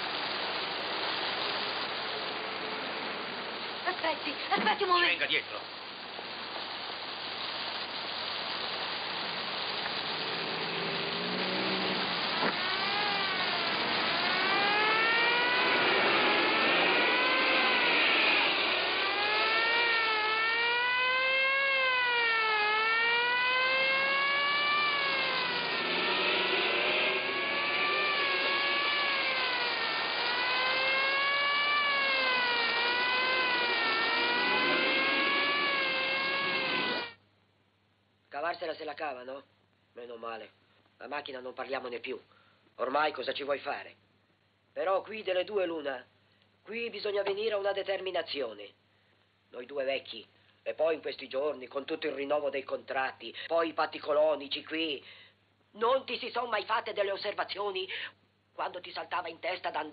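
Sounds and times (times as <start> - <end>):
steady rushing noise: 0.0 - 37.2
wailing siren: 10.2 - 37.2.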